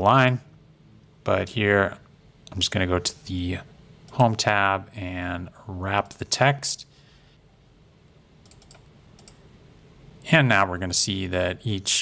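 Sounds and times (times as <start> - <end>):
faint computer mouse clicks: 8.4 - 9.4.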